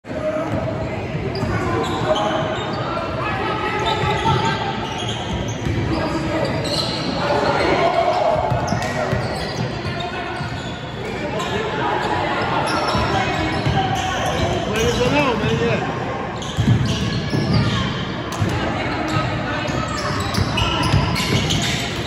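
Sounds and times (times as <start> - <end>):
voices echoing in a hall: 0.0 - 22.0.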